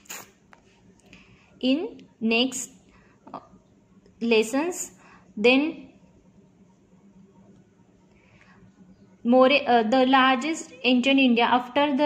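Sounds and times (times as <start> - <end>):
brief hiss: 0.0 - 0.4.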